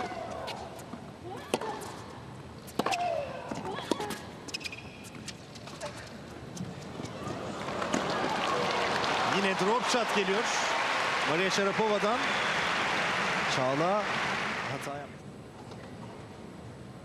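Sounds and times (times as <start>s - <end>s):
tennis ball hit by rackets: 2.7s - 4.7s
crowd noise: 6.6s - 15.2s.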